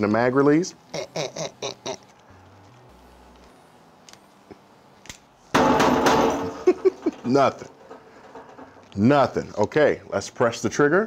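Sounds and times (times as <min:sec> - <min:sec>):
loud rattling clatter: 0:05.6 - 0:09.3.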